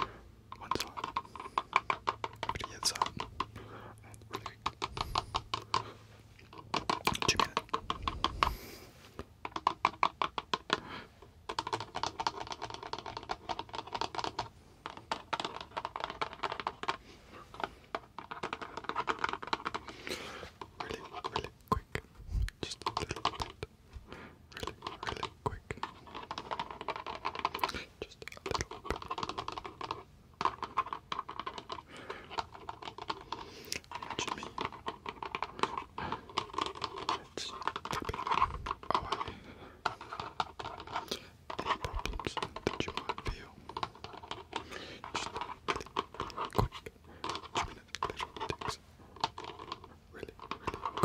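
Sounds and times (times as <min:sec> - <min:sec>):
fingertips tapping rapidly: 0:00.0 - 0:51.0.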